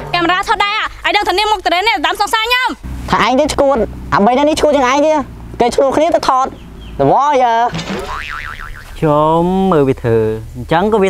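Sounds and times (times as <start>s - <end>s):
cartoon boing: 7.8s - 9.0s.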